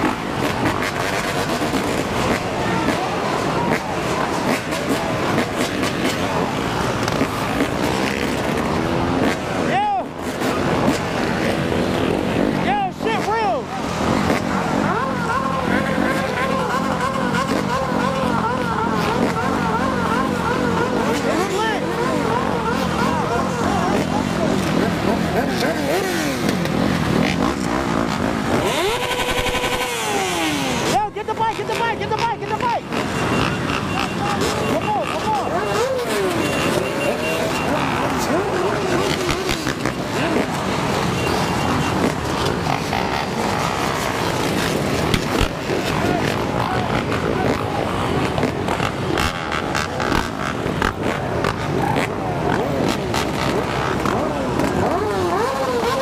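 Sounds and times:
engines idling and revving: 0.0s - 56.0s.

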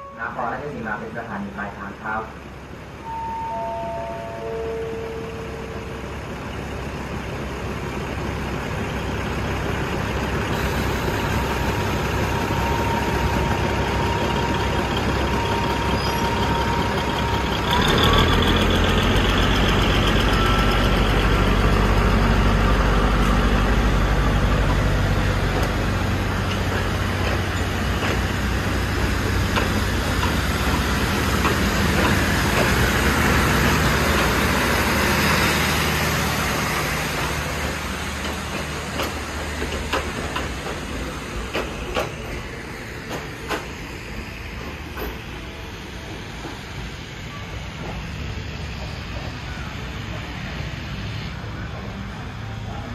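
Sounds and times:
diesel train engine: 0.0s - 52.9s
train wheels on rails: 4.4s - 52.9s.

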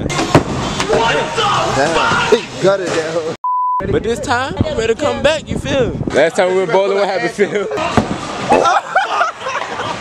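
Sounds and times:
censor bleep: 3.4s - 3.8s.

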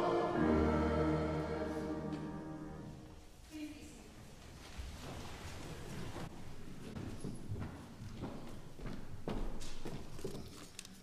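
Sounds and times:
footsteps on wooden floor: 4.5s - 10.7s.

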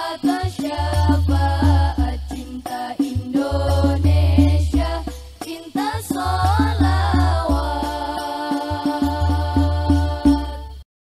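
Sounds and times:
frame drums beating: 0.0s - 10.8s.

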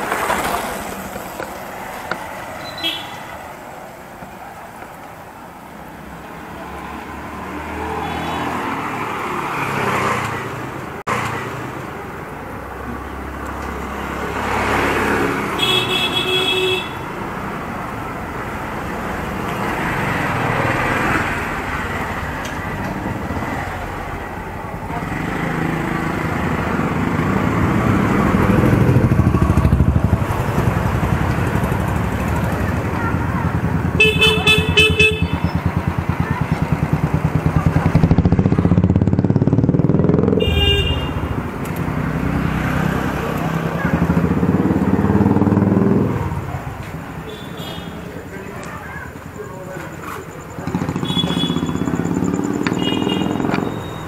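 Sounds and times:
street traffic: 0.0s - 54.0s
car horn: 2.6s - 3.3s, 15.6s - 17.1s, 33.9s - 35.6s, 40.3s - 41.4s, 50.7s - 54.0s
horn beeping rapidly: 34.0s - 35.6s, 50.8s - 54.0s.

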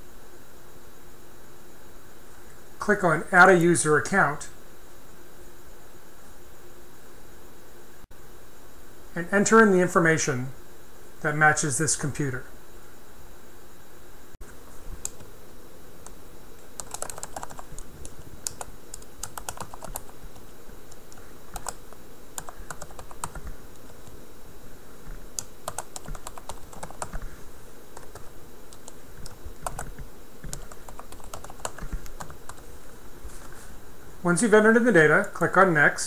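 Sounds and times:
typing on computer keyboard: 16.8s - 20.1s, 22.4s - 23.5s, 25.4s - 27.2s, 28.0s - 32.6s.

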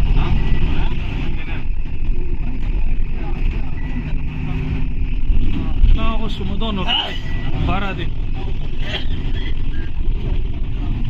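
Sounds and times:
bus engine rumbling: 0.0s - 11.0s
passengers' voices: 0.0s - 11.0s.

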